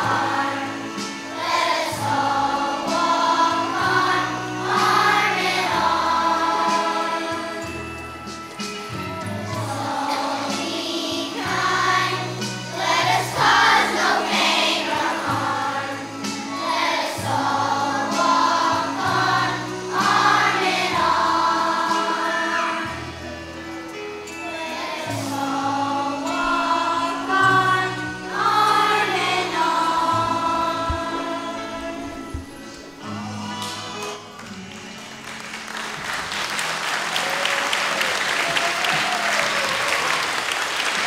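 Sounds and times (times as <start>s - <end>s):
children's choir singing: 0.0s - 41.0s
musical accompaniment with bass: 0.0s - 41.0s.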